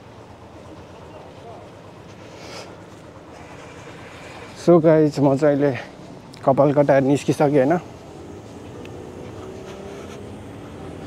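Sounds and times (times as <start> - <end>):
street rumble: 0.0 - 11.0.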